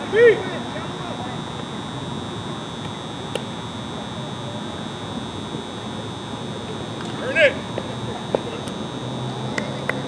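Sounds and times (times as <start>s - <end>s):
outdoor ambience murmur: 0.0s - 10.0s
steady high-pitched whine: 0.0s - 10.0s.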